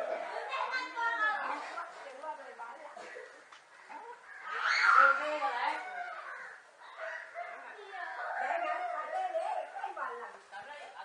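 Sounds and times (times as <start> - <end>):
loud high-pitched cry: 4.4 - 7.0.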